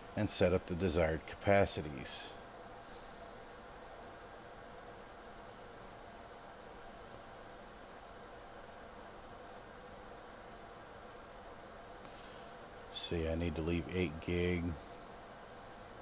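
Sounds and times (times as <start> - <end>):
faint hum: 0.0 - 16.0
low background hiss: 0.0 - 16.0.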